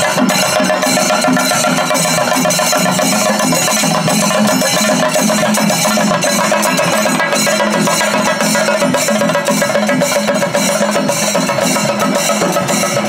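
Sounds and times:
drum ensemble beaten with sticks: 0.0 - 13.0.

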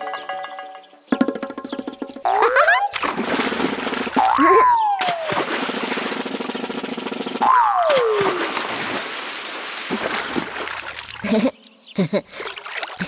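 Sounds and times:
water splashing in paddling pool: 2.3 - 11.4, 12.4 - 13.0
cartoon whistle gliding down: 4.2 - 5.4.

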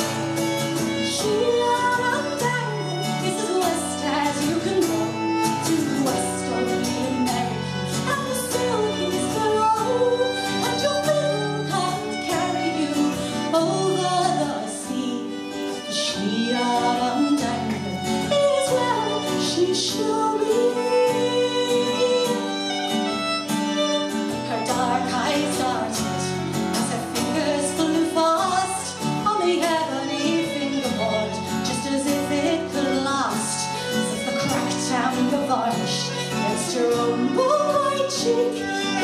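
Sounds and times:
woman singing: 0.0 - 23.1, 23.8 - 39.0
strummed acoustic guitar: 0.0 - 39.0
violin playing: 0.0 - 39.0.

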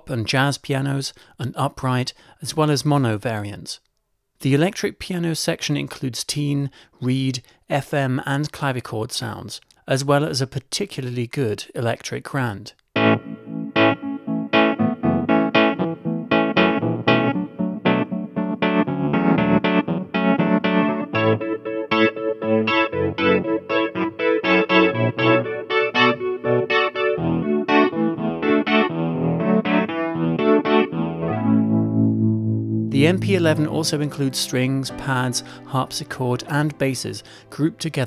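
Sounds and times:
electric piano chords and notes: 13.0 - 37.7.

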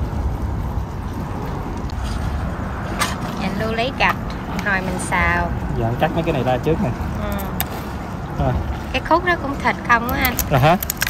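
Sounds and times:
low outdoor background rumble: 0.0 - 11.0.

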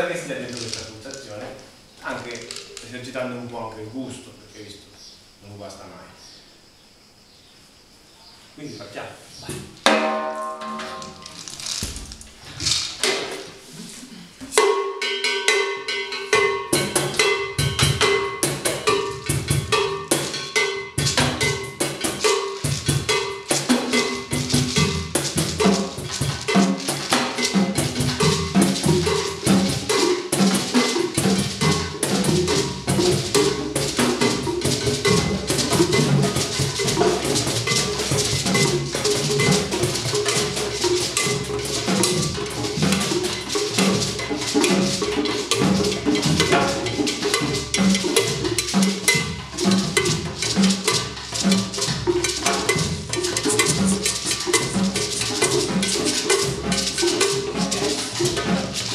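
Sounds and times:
drums playing a rhythm: 9.4 - 58.9
cowbell: 9.9 - 11.4, 14.6 - 58.9.

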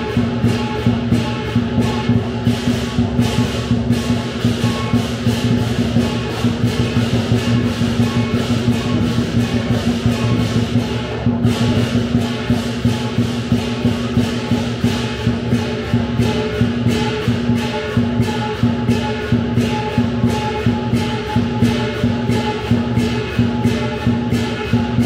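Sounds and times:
big drum beat: 0.0 - 25.0
cymbal clashes: 0.0 - 25.0
gong ringing: 0.0 - 25.0.

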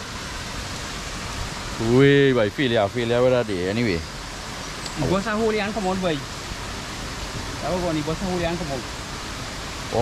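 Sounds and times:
steady rushing hiss: 0.0 - 10.0.

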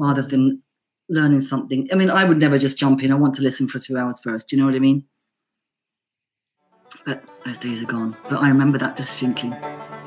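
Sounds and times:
person talking: 0.0 - 5.1, 6.9 - 9.7.

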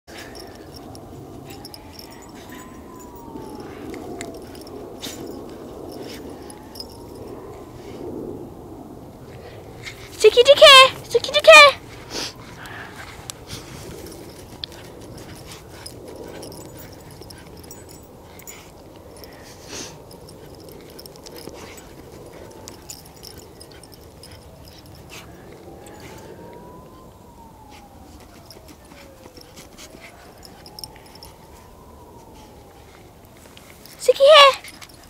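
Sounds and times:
dogs digging in soil: 0.1 - 8.2, 9.4 - 35.0.

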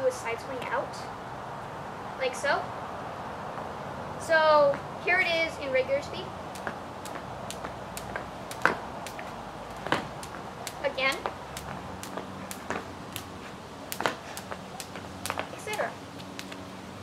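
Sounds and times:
jump rope slapping concrete: 6.5 - 16.7.

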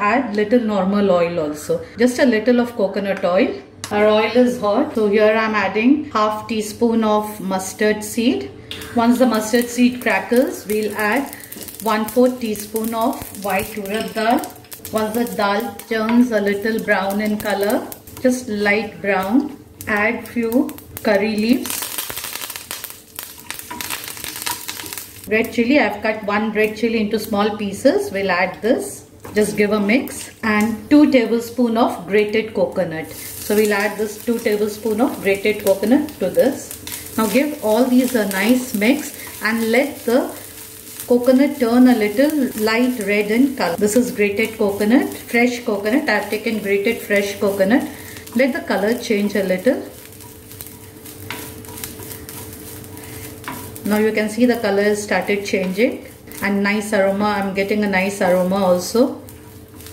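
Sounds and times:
leaves sizzling in hot oil: 6.6 - 59.9
spatula scraping a pan: 50.1 - 53.9.

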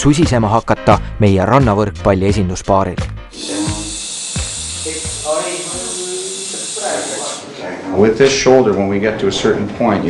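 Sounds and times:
steady hiss: 3.5 - 7.5.

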